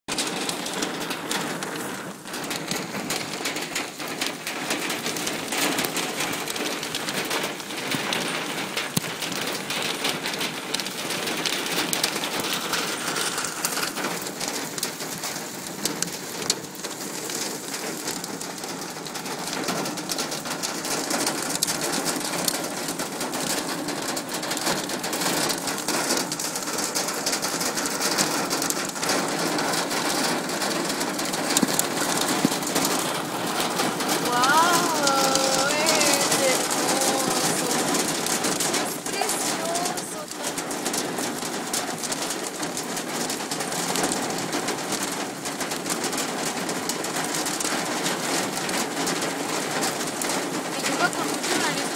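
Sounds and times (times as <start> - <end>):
hail and rain pelting down: 0.1 - 51.9.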